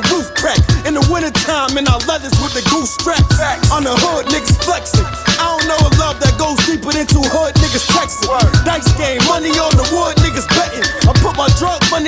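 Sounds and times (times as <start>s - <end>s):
rapping over a beat: 0.0s - 12.0s
deep bass hits: 0.6s - 12.0s.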